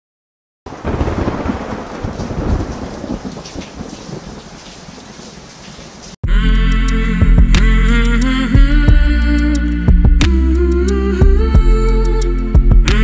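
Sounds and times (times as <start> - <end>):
steady rain: 0.7 - 6.2
thunder rumbling: 0.7 - 6.2.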